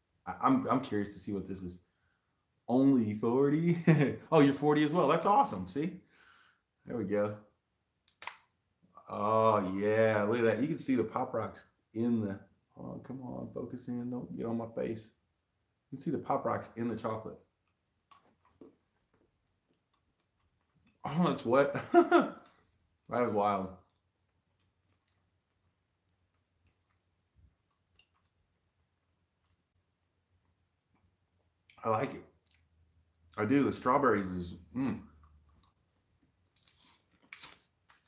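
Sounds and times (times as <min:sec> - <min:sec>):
chewing chocolate bar: 0:23.8 - 0:28.4.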